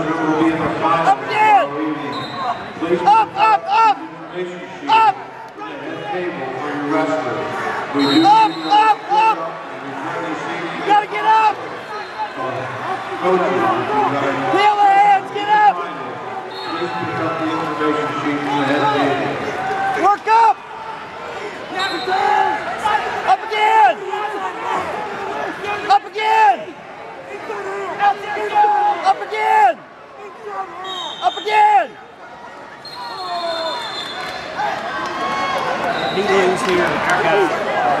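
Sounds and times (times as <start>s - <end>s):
coaches and spectators shouting: 0.0s - 38.0s.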